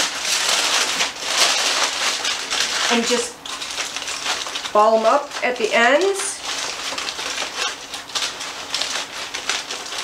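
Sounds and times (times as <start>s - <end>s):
aluminium foil crinkling: 0.0s - 10.0s.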